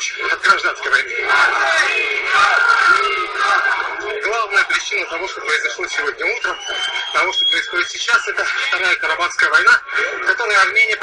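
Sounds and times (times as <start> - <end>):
crowd shouting and chanting: 0.0 - 8.7.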